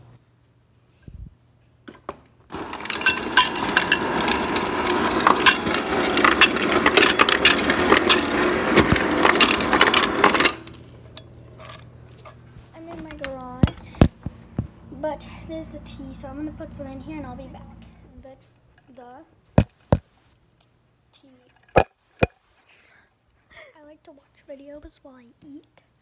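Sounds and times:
mug and kitchenware clattering: 2.6 - 10.6.

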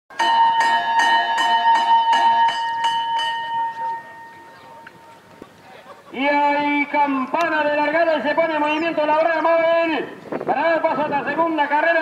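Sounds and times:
metallic bell strikes ringing: 0.1 - 4.7.

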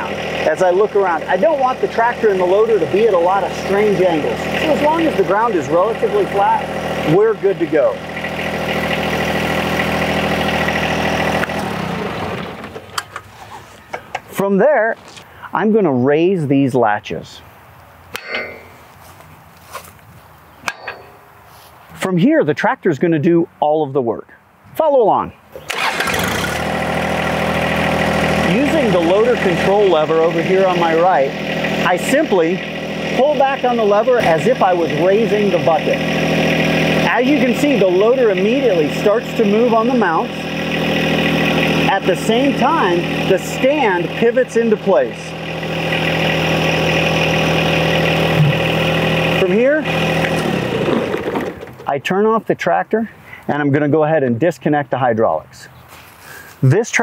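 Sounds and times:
hydraulics working: 0.0 - 14.4, 18.1 - 19.0, 20.6 - 21.5, 25.6 - 51.9
tractor diesel engine idling: 0.0 - 14.4, 25.6 - 52.0
sharp metallic clicks: 20.6 - 21.3.

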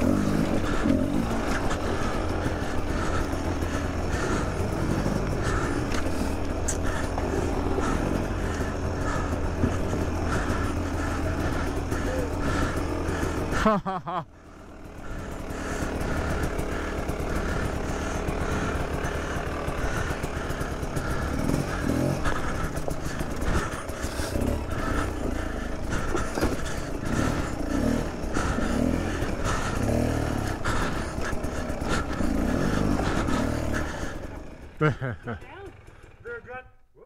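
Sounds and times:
dirt bike engine revving: 0.0 - 36.3
knocks from bike: 26.1 - 26.7.

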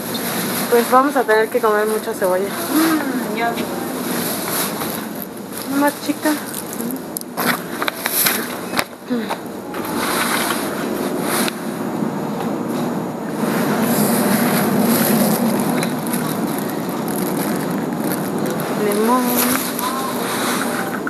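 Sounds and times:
plastic bags rustling: 0.0 - 8.8, 13.5 - 21.0.

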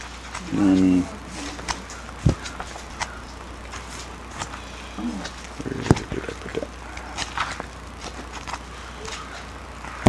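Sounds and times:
paper pages rustling: 0.0 - 10.0
steady low hum: 0.0 - 10.0.

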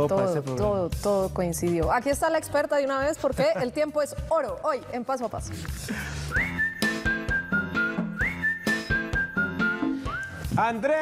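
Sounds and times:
backing music with steady beat: 5.4 - 11.0
whistled jingle tune: 6.2 - 11.0.

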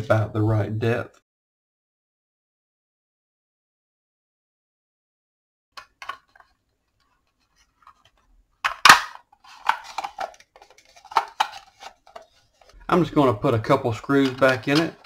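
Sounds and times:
plastic housing clicks and knocks: 5.8 - 6.5, 8.6 - 12.3
plastic rattles: 5.8 - 12.8, 13.9 - 15.0.

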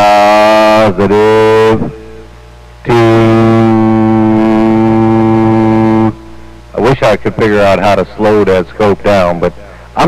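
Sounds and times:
steady low test tone: 0.0 - 10.0.

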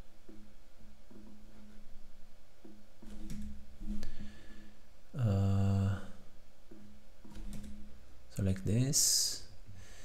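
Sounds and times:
man speaking: 5.2 - 6.2, 8.3 - 9.5
computer keyboard keystrokes: 7.3 - 7.8.

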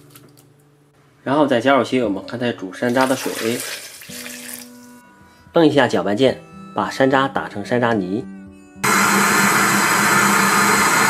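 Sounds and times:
blender motor running: 8.8 - 11.0.

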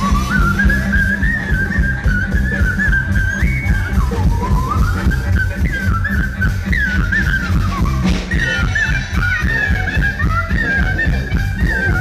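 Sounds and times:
live band playing dance tune: 0.0 - 12.0.

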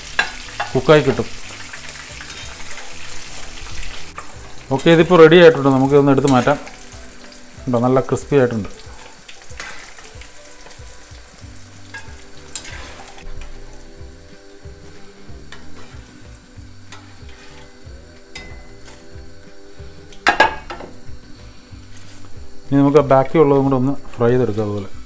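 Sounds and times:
deep-frying sizzle: 0.0 - 25.0.

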